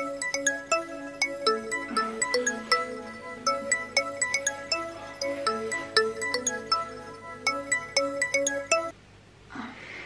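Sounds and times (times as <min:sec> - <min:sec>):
mobile phone ringtone melody: 0:00.0 - 0:08.9.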